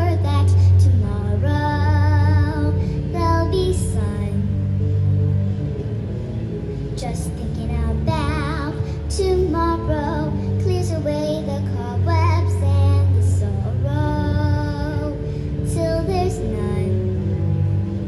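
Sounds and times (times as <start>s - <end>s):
girl singing into a microphone: 0.0s - 4.6s, 7.0s - 17.2s
musical accompaniment: 0.0s - 18.0s.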